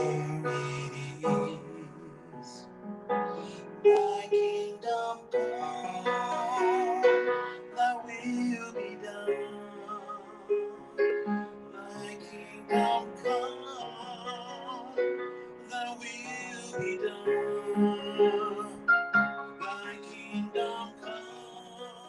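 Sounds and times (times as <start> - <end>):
man singing with vibrato: 0.0 - 2.7, 3.3 - 22.0
piano accompaniment: 0.0 - 22.0.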